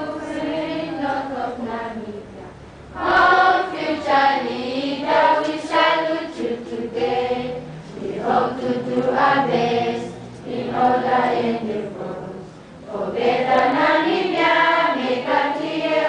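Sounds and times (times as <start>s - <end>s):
students singing together: 0.0s - 16.0s.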